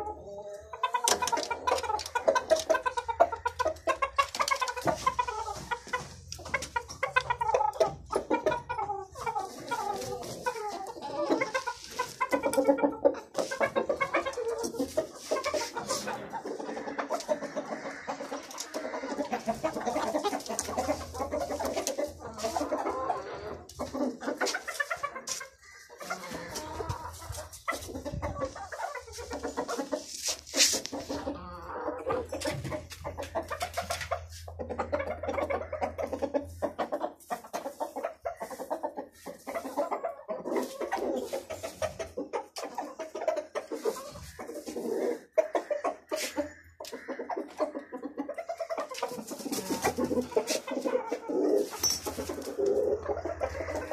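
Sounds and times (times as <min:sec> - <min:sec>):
chickens clucking: 0:00.0 - 0:53.9.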